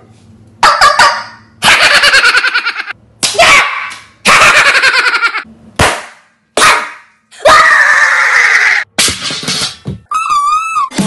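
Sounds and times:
man laughing: 1.7s - 2.9s, 4.3s - 5.5s.

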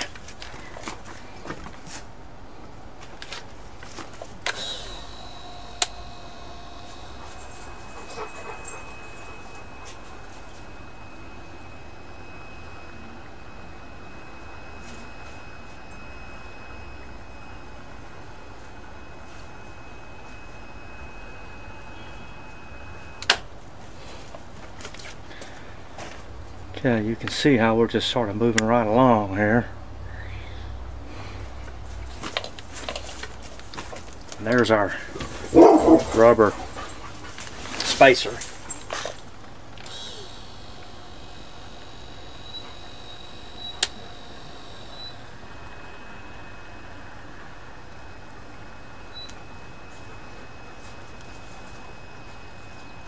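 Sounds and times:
caulk gun motor whine: 4.4s - 17.9s, 39.0s - 46.9s.

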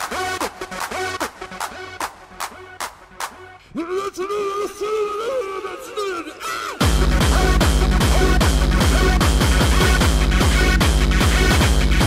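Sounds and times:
hardcore techno music: 0.0s - 12.0s.

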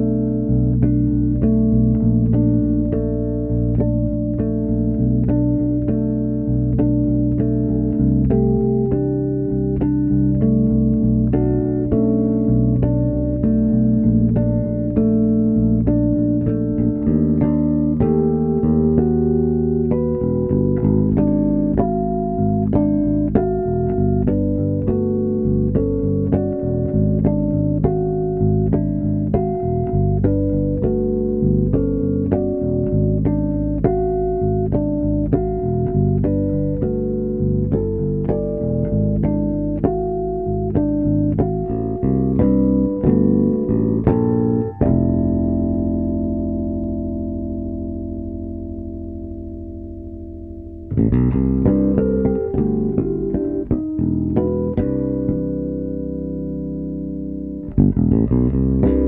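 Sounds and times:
fretless bass harmonics: 0.0s - 59.0s.

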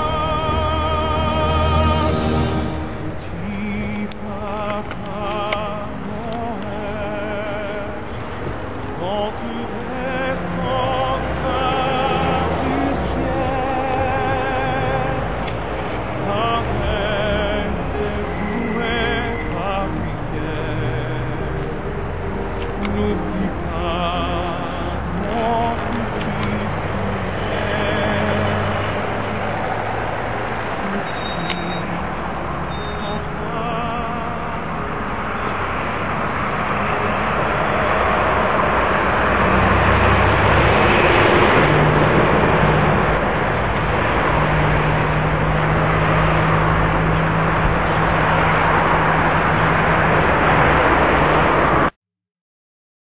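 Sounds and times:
vehicle noise with low hum: 2.9s - 51.9s.

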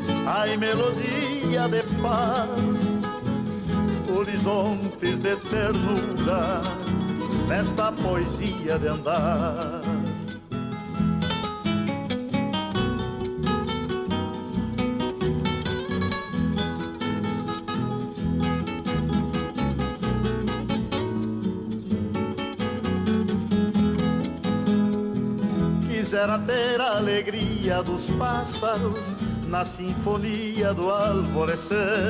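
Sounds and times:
acoustic guitar picking: 0.0s - 32.0s.

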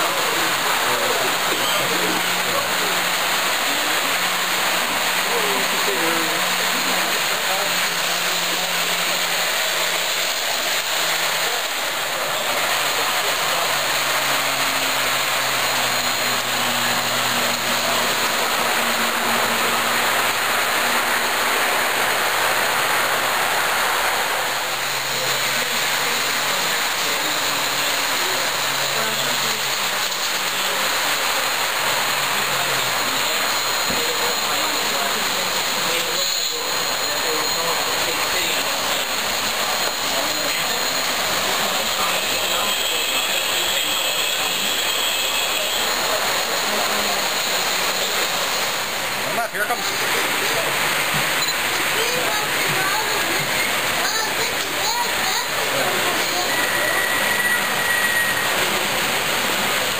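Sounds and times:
indistinct crowd chatter: 0.0s - 59.9s
model trains running: 0.0s - 59.9s.

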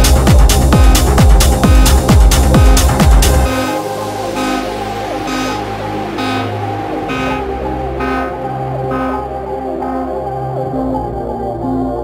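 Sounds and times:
held synth bass line: 0.0s - 12.0s
pulsing synth chord: 0.0s - 12.0s.

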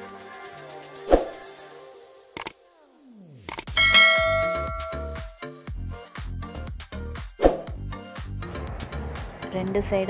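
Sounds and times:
bright bell ding: 3.7s - 5.4s.

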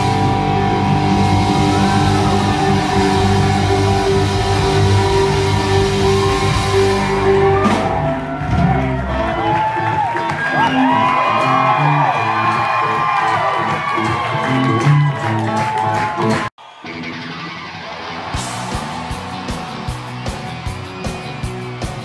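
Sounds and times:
crowd cheering and whooping: 0.0s - 22.0s
live rock band playing: 0.0s - 22.0s.

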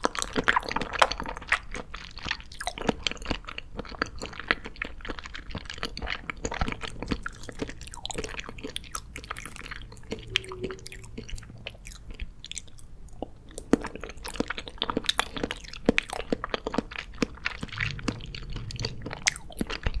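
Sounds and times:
chewing gummy candy: 0.0s - 20.0s.

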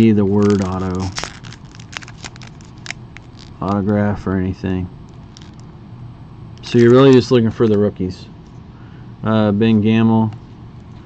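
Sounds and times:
plastic wrapper crinkling: 0.0s - 4.0s, 5.1s - 5.7s.

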